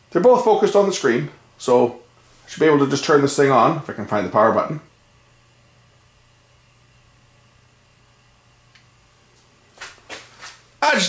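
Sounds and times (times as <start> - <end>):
projector low hum: 0.0 - 11.0.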